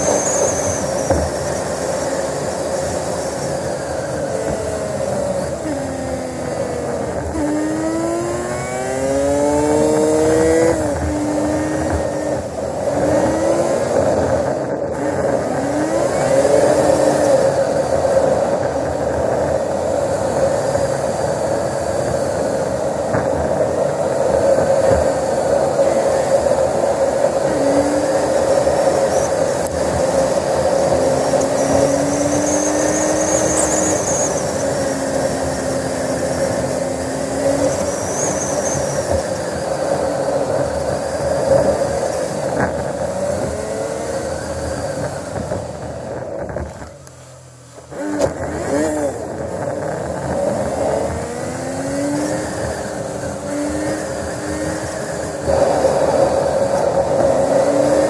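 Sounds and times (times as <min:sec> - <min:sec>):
car engine accelerating: 0:00.0 - 0:22.0, 0:22.6 - 0:58.0
road noise: 0:00.0 - 0:58.0.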